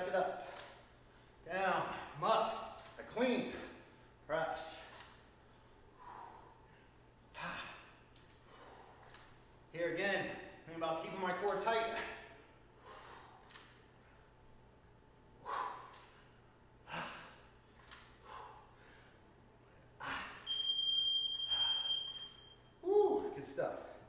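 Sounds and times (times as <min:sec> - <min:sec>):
man breathing hard: 0:05.6 - 0:09.2, 0:12.7 - 0:14.3, 0:15.4 - 0:20.4
high electronic beep: 0:20.5 - 0:22.6.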